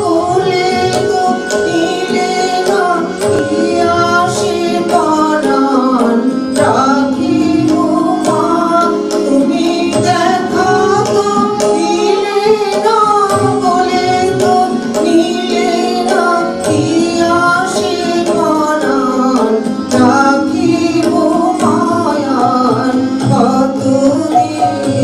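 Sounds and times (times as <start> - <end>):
harmonium chords: 0.0 - 25.0
light hand percussion: 0.0 - 25.0
tabla: 0.0 - 25.0
woman singing: 0.0 - 25.0.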